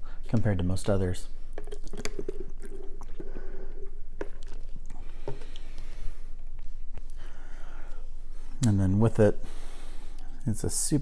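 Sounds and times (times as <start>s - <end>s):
person gulping and swallowing: 1.5s - 7.2s.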